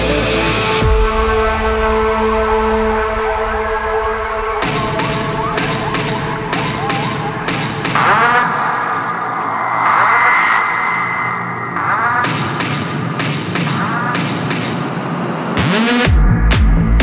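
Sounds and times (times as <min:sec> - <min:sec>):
sustained synth pads: 0:00.4 - 0:17.0
sweeping synth swells: 0:01.2 - 0:13.2.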